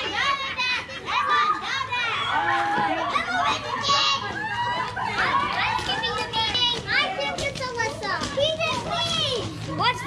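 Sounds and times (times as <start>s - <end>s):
children calling out while playing: 0.0s - 10.0s.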